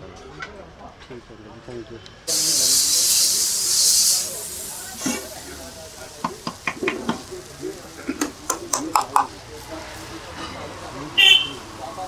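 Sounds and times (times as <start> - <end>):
water hissing on hot griddle: 2.3 - 12.0
sharp clicks and knocks: 6.2 - 7.3, 8.1 - 9.3.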